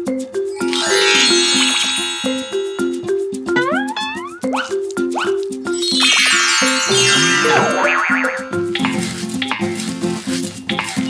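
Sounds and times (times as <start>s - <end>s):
bouncy cartoon music: 0.0s - 11.0s
wavering whistling sound effect: 0.6s - 4.4s, 6.0s - 8.7s.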